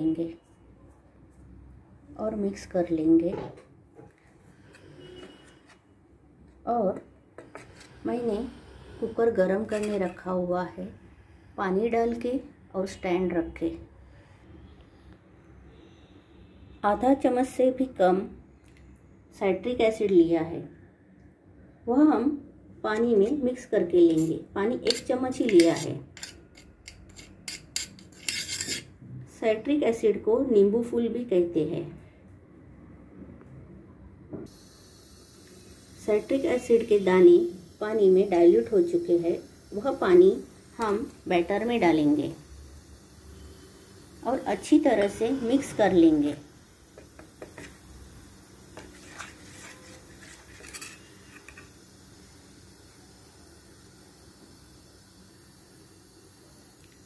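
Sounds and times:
spoon scraping metal bowl: 0:04.6 - 0:05.8, 0:07.4 - 0:10.3, 0:24.1 - 0:29.0, 0:48.7 - 0:51.7
spoon stirring batter: 0:48.8 - 0:51.6.

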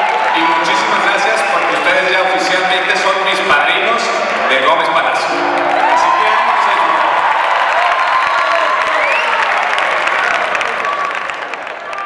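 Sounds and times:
mariachi music: 0:00.0 - 0:07.7
audience applauding and cheering: 0:00.0 - 0:12.0.

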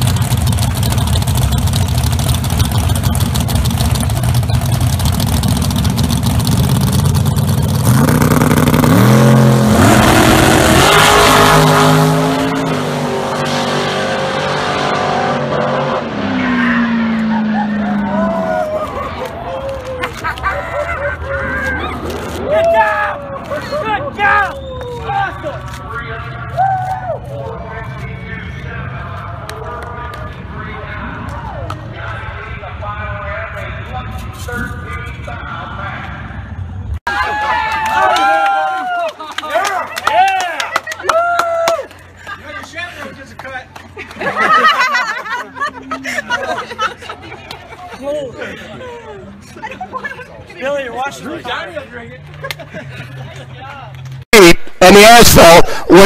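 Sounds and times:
drag cars accelerating: 0:00.0 - 0:24.2.

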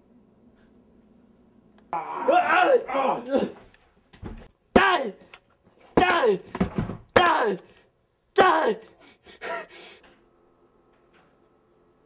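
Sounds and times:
short falling vocal cry: 0:01.9 - 0:03.6
person gasping: 0:08.7 - 0:10.1.

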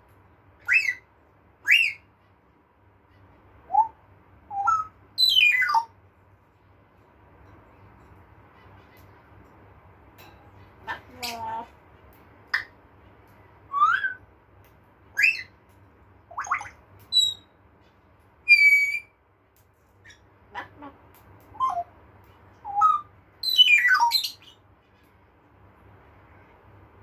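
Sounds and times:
parrot whistles and squawks: 0:00.6 - 0:02.2, 0:03.6 - 0:06.0, 0:13.7 - 0:14.2, 0:15.1 - 0:15.6, 0:16.3 - 0:17.5, 0:18.4 - 0:19.2, 0:21.5 - 0:21.9, 0:22.6 - 0:24.6.

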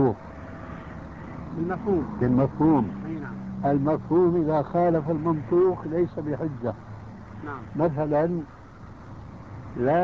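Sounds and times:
men speaking: 0:00.0 - 0:00.2, 0:01.4 - 0:08.6, 0:09.6 - 0:10.0
steady background noise: 0:00.0 - 0:10.0.

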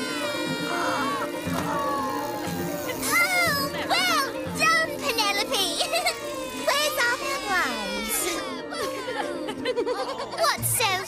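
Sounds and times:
cartoon children's cries and squeals: 0:00.0 - 0:09.5
background music: 0:00.0 - 0:11.0.

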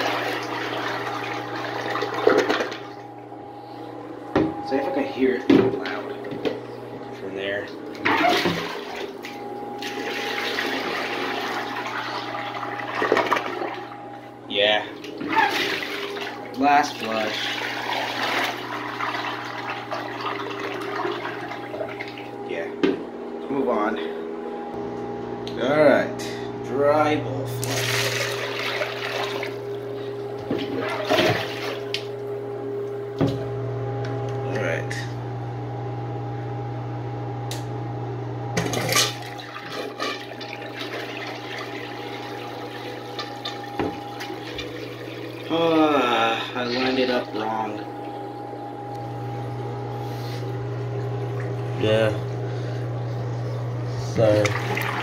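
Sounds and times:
toilet flushing: 0:00.0 - 0:03.2, 0:07.4 - 0:22.4, 0:27.5 - 0:32.2, 0:38.6 - 0:50.1, 0:53.8 - 0:55.0
steady hum: 0:00.0 - 0:55.0.

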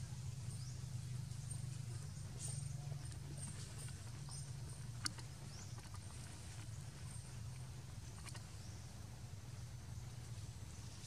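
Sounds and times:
steady low rumble: 0:00.0 - 0:11.0.

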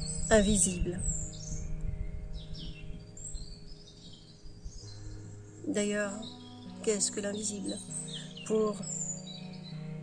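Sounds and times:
small birds chirping: 0:00.0 - 0:10.0
soft sustained background tones: 0:00.0 - 0:10.0.

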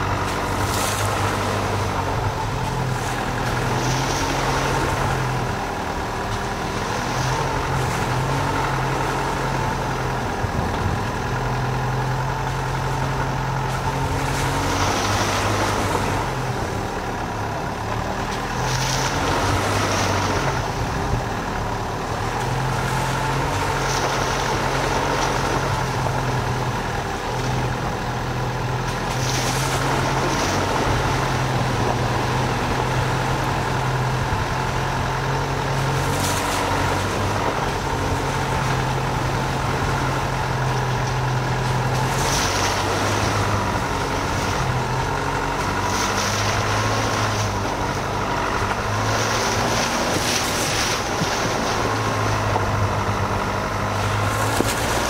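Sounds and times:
car engine droning at low speed: 0:00.0 - 0:55.0
tyres rushing through puddles: 0:00.0 - 0:55.0.

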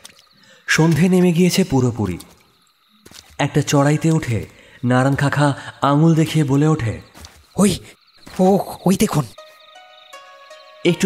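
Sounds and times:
crickets chirping: 0:00.0 - 0:11.0
person's voice: 0:03.4 - 0:09.4.

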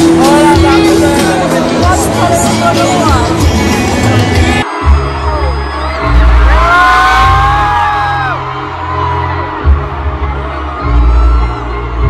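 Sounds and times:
music with heavy bass: 0:00.0 - 0:12.0
crowd cheering: 0:04.0 - 0:12.0.

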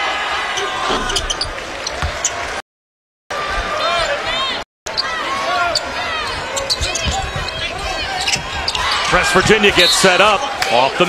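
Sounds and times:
sneakers squeaking: 0:00.6 - 0:02.4, 0:04.9 - 0:10.0
crowd hubbub: 0:03.3 - 0:11.0.

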